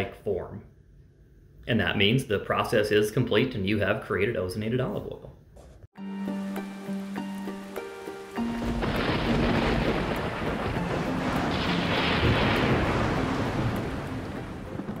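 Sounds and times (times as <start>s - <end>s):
musical notes: 6.0s - 15.0s
rain rushing: 6.2s - 15.0s
thunder rumble: 8.4s - 15.0s.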